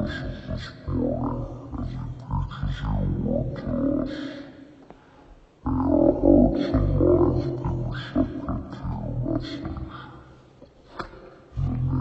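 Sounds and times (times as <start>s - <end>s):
man preaching amplified: 0.0s - 4.6s, 5.7s - 10.4s, 11.6s - 12.0s.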